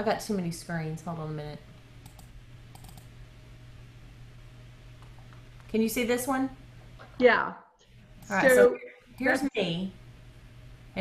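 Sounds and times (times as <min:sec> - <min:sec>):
low steady hum: 0:00.0 - 0:11.0
computer keyboard clicks: 0:02.0 - 0:03.1.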